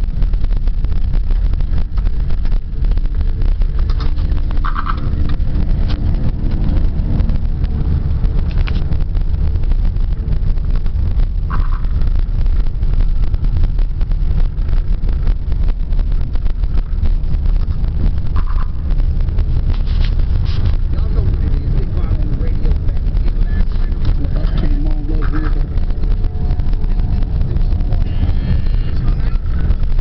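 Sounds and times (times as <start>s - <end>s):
engine and tyre rumble: 0.0s - 30.0s.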